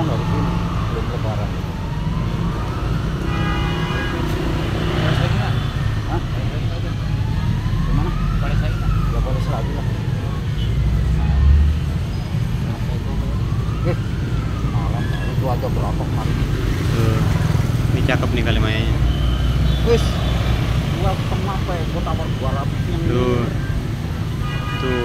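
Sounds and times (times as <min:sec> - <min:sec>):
street traffic rumble: 0:00.0 - 0:25.0
people talking: 0:14.7 - 0:17.3, 0:18.0 - 0:19.0, 0:21.0 - 0:23.6.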